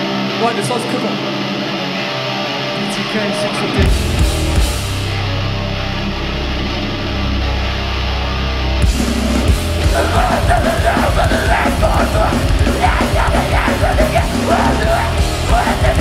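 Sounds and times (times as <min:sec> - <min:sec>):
distorted guitar and bass chord: 0:00.0 - 0:16.0
drums playing steady beat: 0:03.7 - 0:05.2, 0:08.8 - 0:16.0
shouted vocals: 0:09.9 - 0:16.0.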